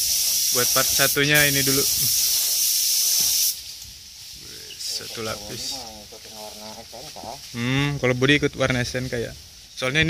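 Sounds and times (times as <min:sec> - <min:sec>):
spray gun hissing: 0:00.0 - 0:07.6.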